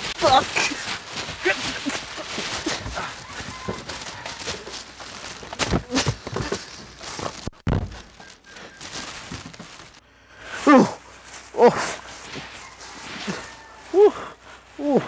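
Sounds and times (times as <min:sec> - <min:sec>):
clothing rustling: 0:00.0 - 0:10.0
plastic crinkling: 0:00.0 - 0:10.0
scuffling and thuds: 0:00.0 - 0:10.0, 0:10.8 - 0:13.6.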